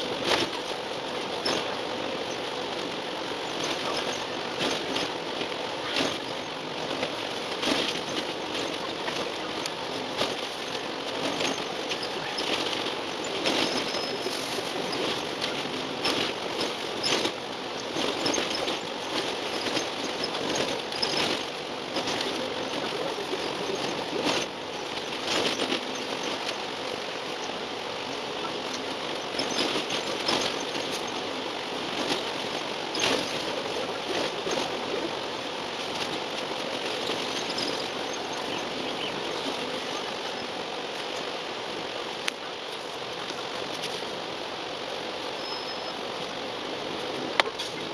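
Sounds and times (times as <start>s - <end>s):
sharp rattles and knocks: 0.0s - 44.2s
bus cabin rushing noise: 0.0s - 47.9s.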